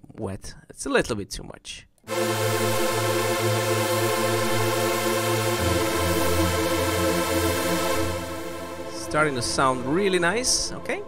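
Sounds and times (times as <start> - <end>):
detuned saw synth pad chord: 2.1 - 11.0.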